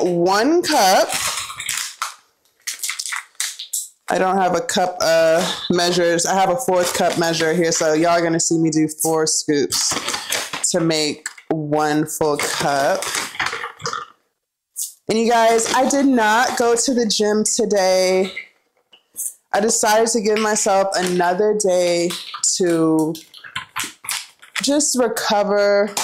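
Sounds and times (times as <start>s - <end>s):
plastic bag rustling: 0.7s - 3.8s, 5.2s - 8.3s, 9.7s - 11.2s, 12.3s - 14.0s, 15.1s - 18.4s.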